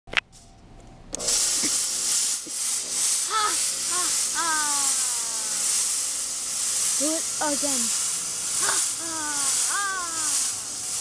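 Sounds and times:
smoke hissing from device: 0:01.1 - 0:11.0
person exclaiming: 0:03.2 - 0:05.8, 0:08.6 - 0:10.5.

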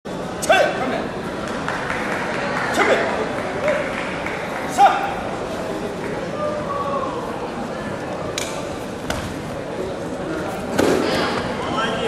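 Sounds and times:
sports hall background noise: 0:00.0 - 0:12.0.

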